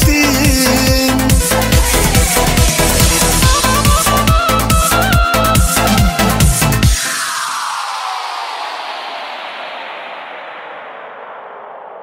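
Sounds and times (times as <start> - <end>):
white-noise sweep falling in pitch: 1.3 - 12.0.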